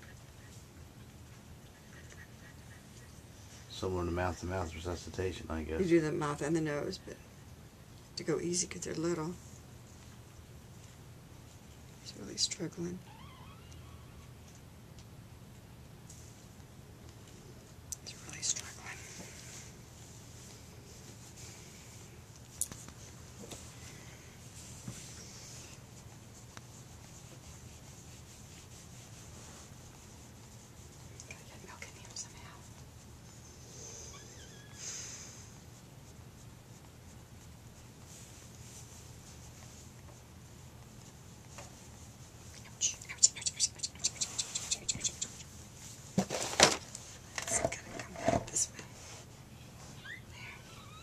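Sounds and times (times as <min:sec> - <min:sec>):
low steady hum: 0:00.0 - 0:51.0
rubbing strokes: 0:18.1 - 0:50.1
puppy squeaks: 0:49.9 - 0:51.0.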